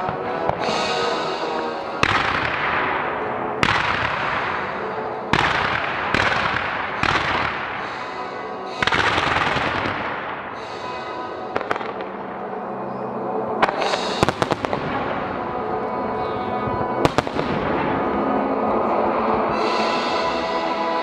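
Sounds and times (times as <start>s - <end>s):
fireworks bangs: 0.0s - 12.4s, 13.6s - 15.9s, 16.6s - 21.0s.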